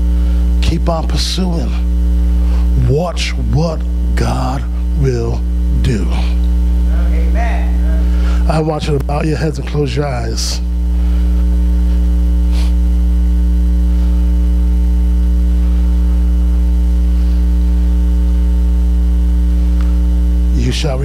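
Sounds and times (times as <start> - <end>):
electrical mains hum: 0.0 - 21.0.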